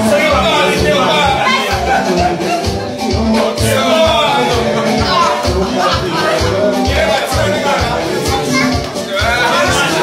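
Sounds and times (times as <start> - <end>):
crowd chatter and calling out: 0.0 - 10.0
loud dance music: 0.0 - 10.0.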